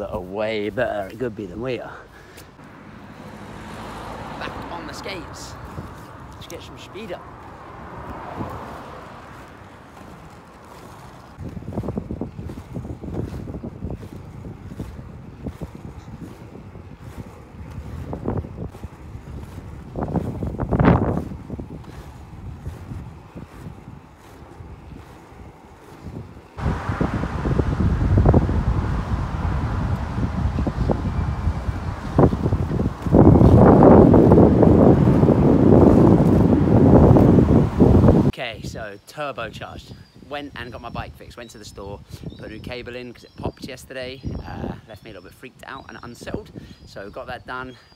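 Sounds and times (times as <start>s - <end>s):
skate wheels rolling on tarmac: 0.0s - 38.4s
wind buffeting microphone: 0.0s - 38.8s, 39.5s - 47.9s.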